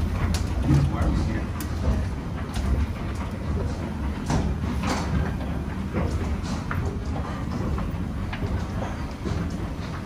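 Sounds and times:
footsteps on metal floor plates: 0.0 - 10.0.

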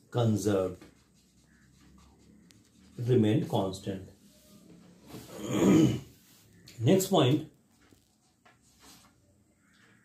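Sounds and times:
marker pen scratching on whiteboard: 0.2 - 3.7.

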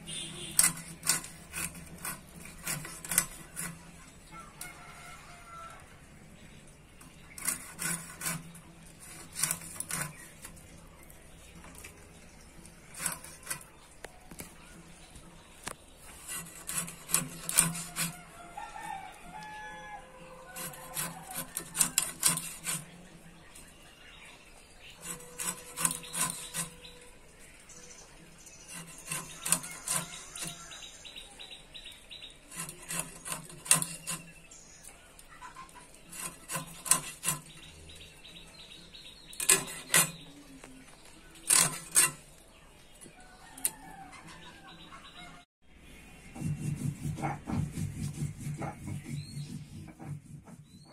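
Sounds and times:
fish scraped against blade: 0.0 - 4.1, 7.1 - 10.7, 12.8 - 14.4, 16.0 - 19.6, 20.4 - 23.1, 24.9 - 27.0, 28.6 - 30.8, 32.5 - 34.4, 35.5 - 37.7, 39.4 - 40.3, 41.4 - 42.3.

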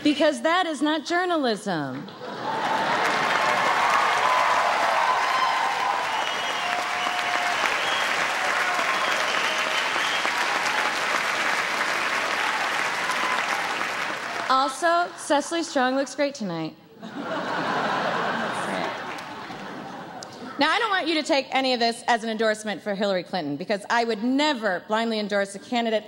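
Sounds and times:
voices rising above clapping: 2.2 - 14.5, 18.2 - 20.4
audience applauding: 2.2 - 14.8, 17.5 - 20.3.

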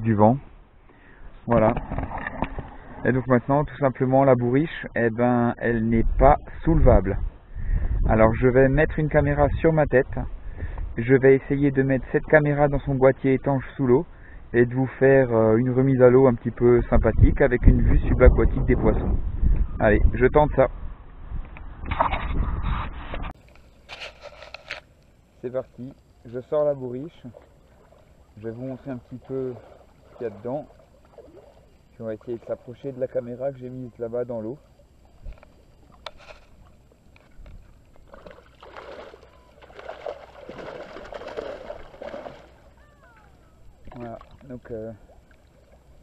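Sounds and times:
water splashing and sloshing: 1.6 - 3.0, 26.4 - 33.6, 34.4 - 46.0
camera handling scraping and rustling: 21.9 - 25.0, 35.4 - 36.6
short rustles: 22.0 - 24.9.

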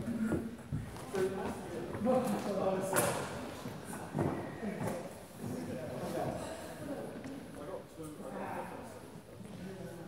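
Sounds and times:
echoing background voices: 0.0 - 10.0.

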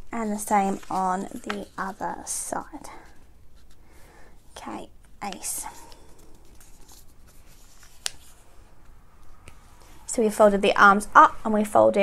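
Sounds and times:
paper rustling and crinkling: 0.2 - 2.3, 5.3 - 9.0.

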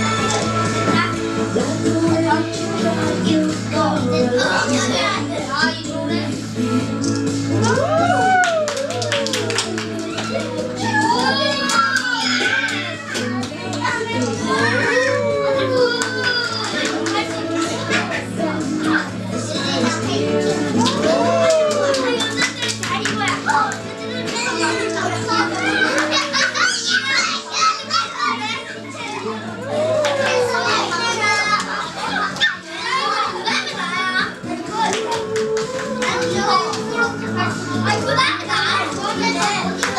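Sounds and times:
children chattering and calling out: 0.0 - 39.9
upbeat background music: 0.0 - 39.9.

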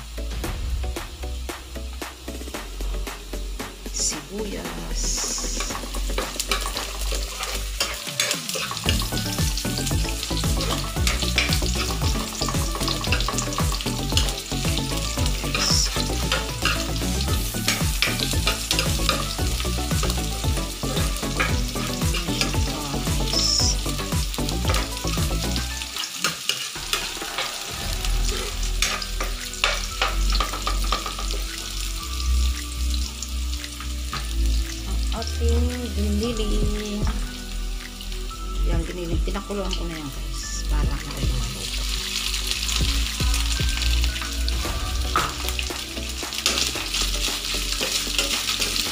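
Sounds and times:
garlic and onion sizzling in oil: 0.0 - 48.9
spatula scraping and tapping pan: 28.8 - 31.4, 45.2 - 48.9.

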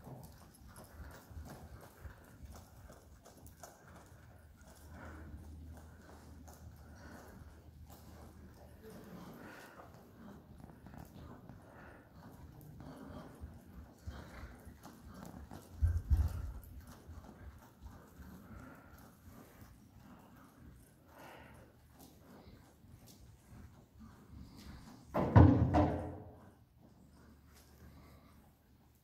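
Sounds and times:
horse hoofbeats on sand: 0.0 - 19.6.

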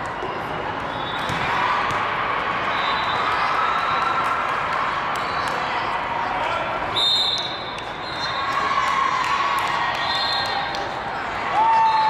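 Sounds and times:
volleyballs being hit and bouncing: 0.0 - 3.5.

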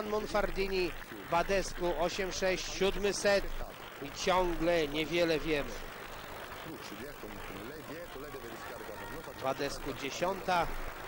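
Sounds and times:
crowd murmur: 0.0 - 11.0
faint voice talking: 6.7 - 10.5.

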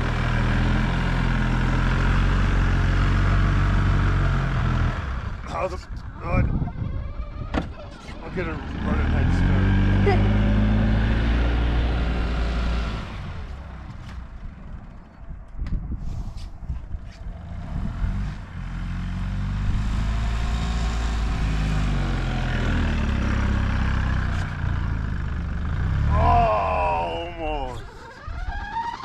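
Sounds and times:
golf cart engine running hard: 0.0 - 15.6, 21.2 - 29.0.

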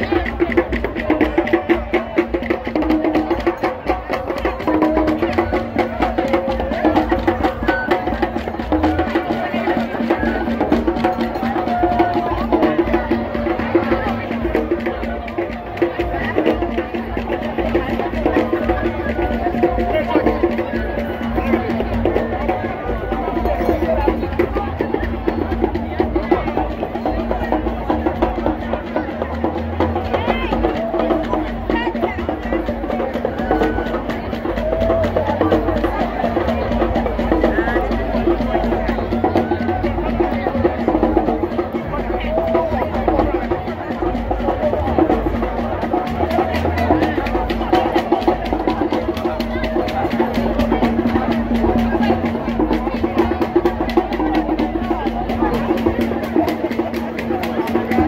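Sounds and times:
crowd singing and calling: 0.0 - 58.0
fast drumming: 0.0 - 58.0.

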